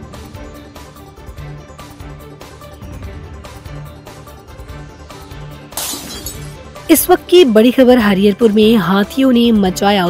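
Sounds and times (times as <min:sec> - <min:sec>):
news background music: 0:00.0 - 0:10.0
shattering sound effect: 0:05.8 - 0:06.6
news reader speaking: 0:06.9 - 0:10.0.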